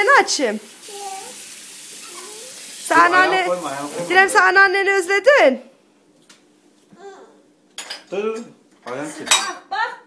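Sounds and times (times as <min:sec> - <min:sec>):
faint steady hiss: 0:00.0 - 0:04.7
toddler babbling: 0:00.9 - 0:01.4, 0:02.0 - 0:02.6, 0:06.9 - 0:07.5.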